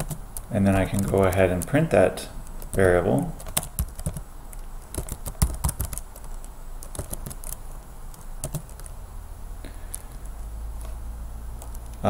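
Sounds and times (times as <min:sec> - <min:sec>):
computer keyboard typing: 0:00.0 - 0:08.9, 0:09.9 - 0:10.4, 0:11.6 - 0:12.0.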